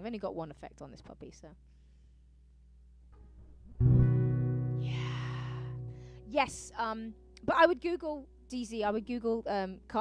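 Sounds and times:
acoustic guitar chord ringing: 3.1s - 6.7s.

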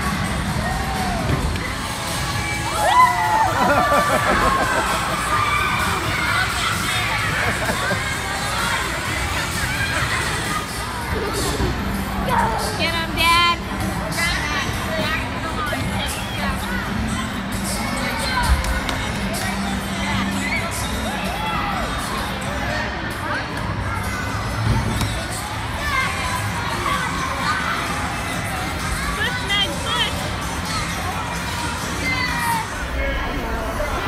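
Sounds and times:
background music: 0.0s - 34.0s
crowd hubbub: 0.0s - 34.0s.

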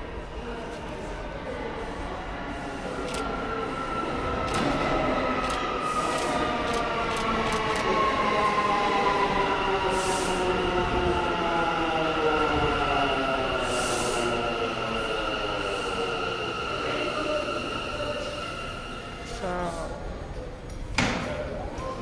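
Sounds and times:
subway train braking whine: 2.6s - 20.1s
air hiss: 13.6s - 14.5s.

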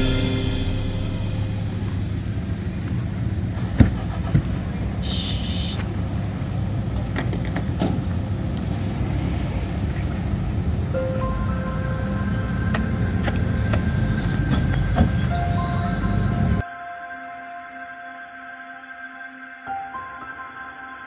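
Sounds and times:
sharp knock: 0.0s - 2.5s
short high chirp: 0.0s - 2.6s.

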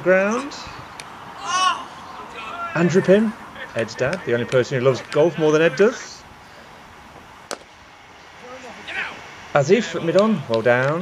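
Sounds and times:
faint distant voices: 0.0s - 11.0s
cricket bat striking ball: 7.5s - 7.7s.

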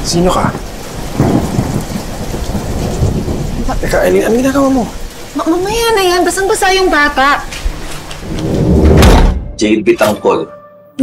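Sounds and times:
heavy rain: 0.0s - 9.4s
thunder rumbling: 0.0s - 9.6s.

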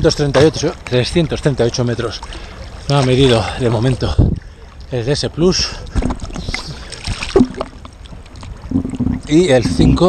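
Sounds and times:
water splashing and lapping: 0.0s - 10.0s.

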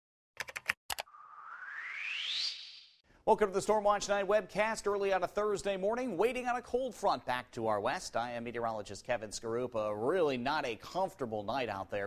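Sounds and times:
rising whoosh: 1.1s - 3.0s.

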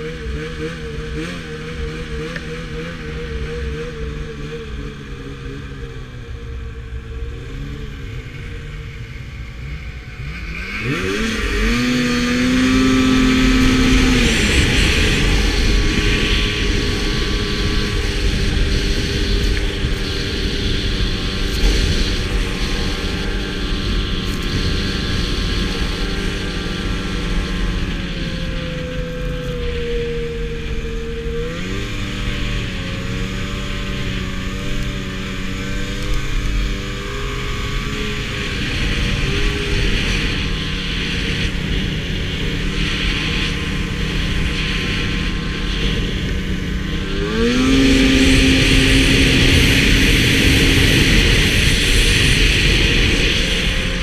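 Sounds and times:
snowmobile engine revving: 0.0s - 54.0s.

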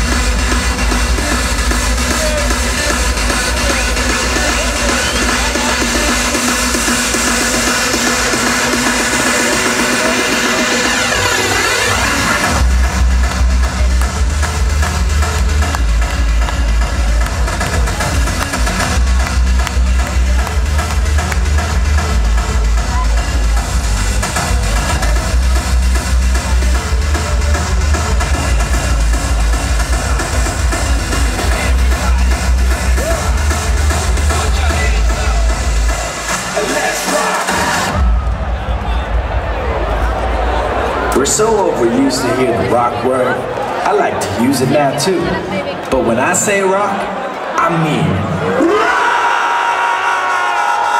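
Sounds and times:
loud hardstyle dance music: 0.0s - 45.4s, 47.6s - 50.9s
heavy bass kick drum: 12.5s - 36.1s.

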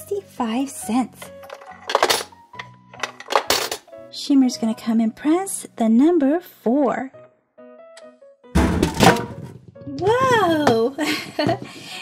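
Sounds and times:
background music: 0.0s - 12.0s
coins clacking into slot: 1.3s - 3.9s.

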